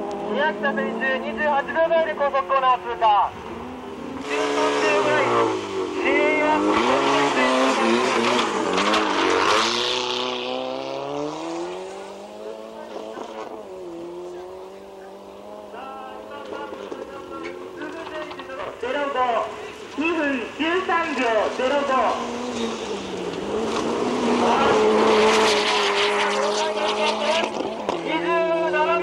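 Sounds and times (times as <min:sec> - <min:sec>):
car engine revving: 0:00.0 - 0:29.0.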